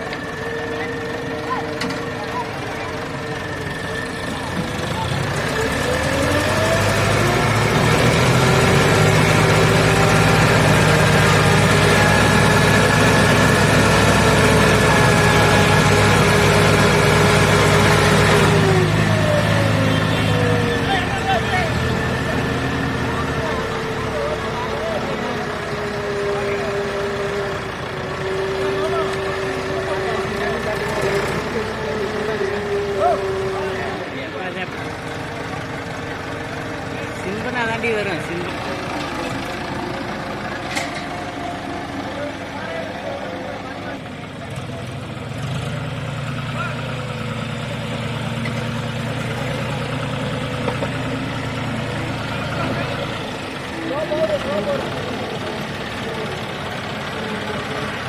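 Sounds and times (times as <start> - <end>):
tractor diesel engine revving: 0.0 - 58.0.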